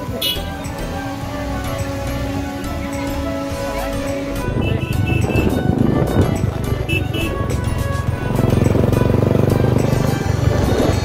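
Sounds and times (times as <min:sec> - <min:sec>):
motorcycle engine running: 0:00.0 - 0:11.0
music playing: 0:00.0 - 0:11.0.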